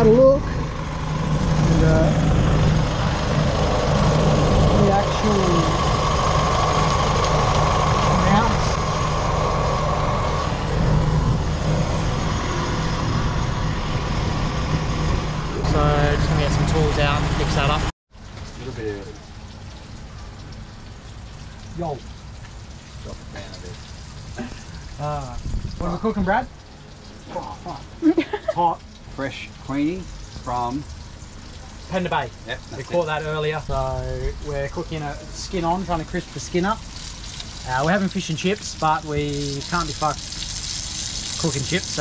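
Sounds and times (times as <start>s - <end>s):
vehicle engine idling: 0.0s - 25.4s.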